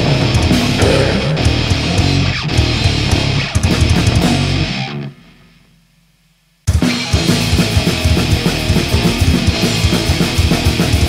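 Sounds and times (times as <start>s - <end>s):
distorted grindcore band playing: 0.0s - 4.7s.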